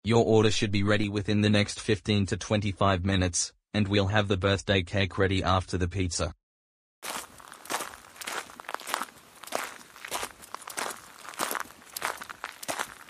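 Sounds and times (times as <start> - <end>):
footsteps of people walking: 7.0 - 13.0.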